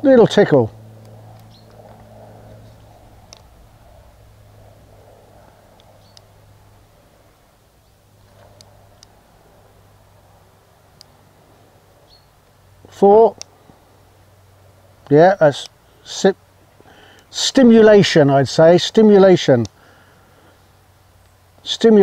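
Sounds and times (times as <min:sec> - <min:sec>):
low steady hum: 0:00.0 - 0:22.0
faint scattered clicks: 0:01.0 - 0:03.6, 0:04.8 - 0:06.7, 0:07.3 - 0:09.4, 0:10.9 - 0:11.2, 0:12.1 - 0:13.8, 0:15.0 - 0:15.9, 0:16.8 - 0:17.3, 0:19.4 - 0:19.8, 0:20.5 - 0:21.7.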